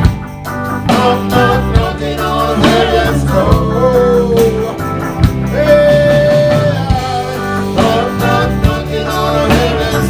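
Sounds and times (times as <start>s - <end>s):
reggae band playing: 0.0s - 10.0s.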